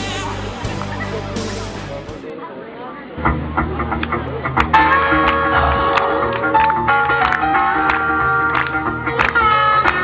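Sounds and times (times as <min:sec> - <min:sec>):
music over outdoor loudspeakers: 0:00.0 - 0:02.3, 0:03.2 - 0:10.0
people's voices: 0:00.0 - 0:07.4.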